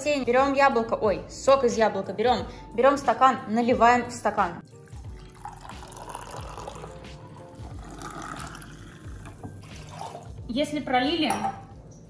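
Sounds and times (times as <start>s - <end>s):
juice pouring into a glass: 4.7s - 10.4s.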